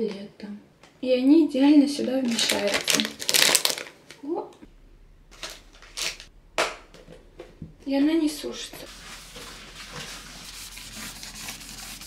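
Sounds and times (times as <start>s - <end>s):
plastic packaging crinkling: 2.0s - 4.2s, 5.4s - 6.3s.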